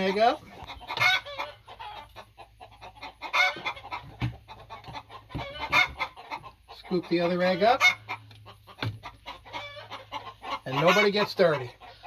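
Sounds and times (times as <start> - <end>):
chickens calling: 0.0 - 12.0.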